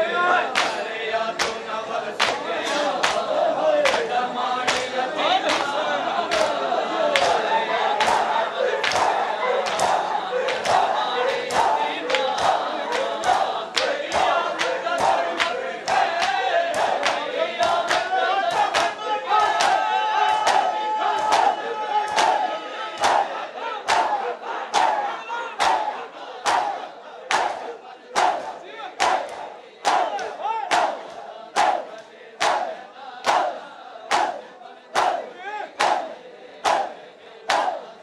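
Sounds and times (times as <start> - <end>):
men chanting: 0.0 - 38.0
men slapping chests in unison: 0.4 - 38.0
men shouting together: 5.1 - 13.5, 14.2 - 32.7.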